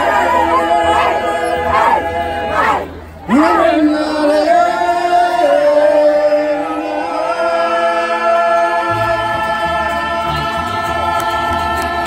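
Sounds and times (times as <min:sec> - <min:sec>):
voices singing held notes: 0:00.0 - 0:12.0.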